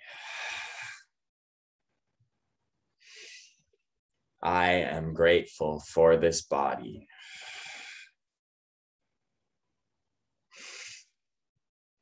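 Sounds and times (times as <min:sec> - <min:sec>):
person breathing: 0:00.0 - 0:01.2, 0:03.0 - 0:03.7, 0:07.1 - 0:08.2, 0:10.5 - 0:11.2
person speaking: 0:04.4 - 0:07.0.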